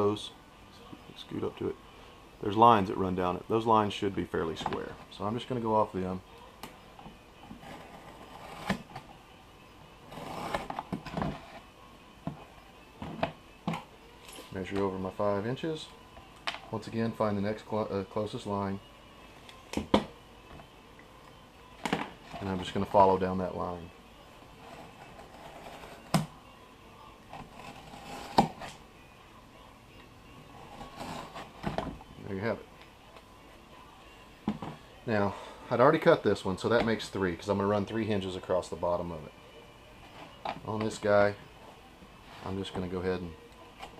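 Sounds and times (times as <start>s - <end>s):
knife scraping through cloth: 7.6s - 8.8s, 10.1s - 11.5s, 24.6s - 26.0s, 27.4s - 28.6s, 30.7s - 31.6s.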